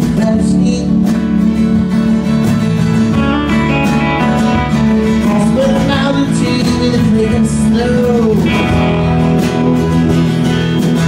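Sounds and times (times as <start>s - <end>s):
rock band playing ballad: 0.0s - 11.0s
strummed acoustic guitar: 0.0s - 11.0s.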